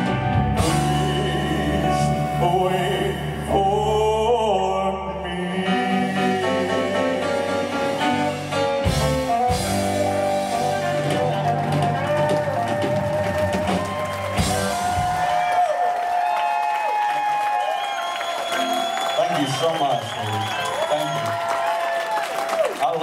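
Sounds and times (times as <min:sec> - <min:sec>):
live rock band playing: 0:00.0 - 0:03.7, 0:05.7 - 0:15.6.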